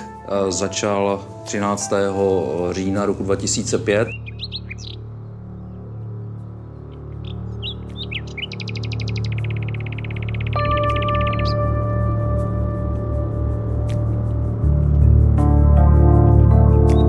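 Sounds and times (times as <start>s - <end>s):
birds chirping and trilling: 0.0s - 15.5s
low droning music: 0.0s - 17.0s
low pulsing beat: 9.3s - 17.0s.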